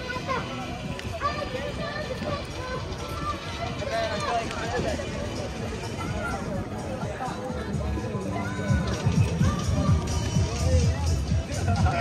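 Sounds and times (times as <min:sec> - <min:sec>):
crowd murmur: 0:00.0 - 0:12.0
people talking close by: 0:00.0 - 0:12.0.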